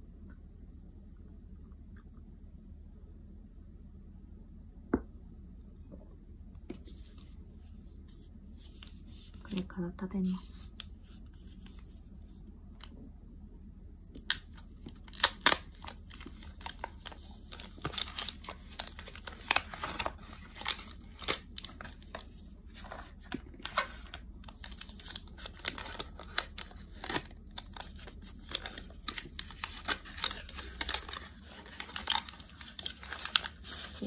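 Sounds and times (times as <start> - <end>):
paper wrapper crinkling and tearing: 14.2 - 34.0
snack package rustling: 14.2 - 34.0.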